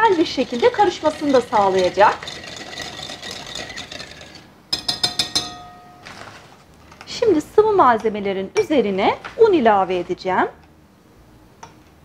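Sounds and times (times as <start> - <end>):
whisk stirring in glass bowl: 0.0 - 5.6
whisk tapping glass bowl rim: 0.0 - 6.1
glass ringing: 2.5 - 6.2.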